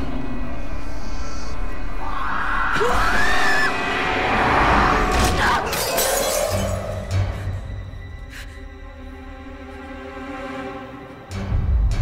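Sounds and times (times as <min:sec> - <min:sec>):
tense horror film music: 0:00.0 - 0:12.0
glass shattering: 0:05.6 - 0:06.9.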